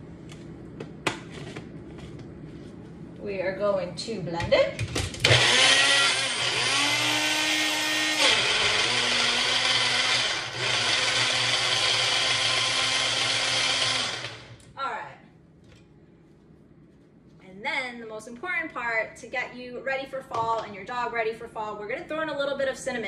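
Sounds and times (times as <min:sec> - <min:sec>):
blender motor running: 0:05.2 - 0:14.6.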